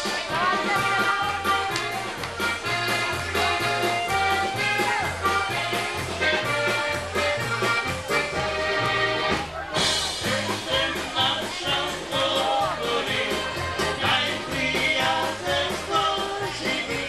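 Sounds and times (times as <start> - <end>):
oom-pah bass: 0.0 - 17.0
polka band playing: 0.0 - 17.0.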